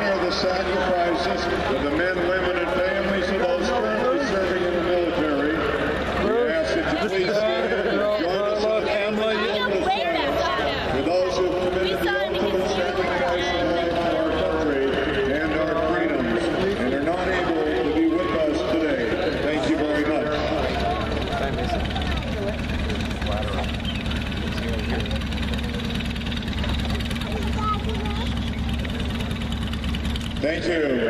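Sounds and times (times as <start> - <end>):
echoing public-address voice: 0.0 - 24.3
murmur of large crowd: 0.0 - 31.0.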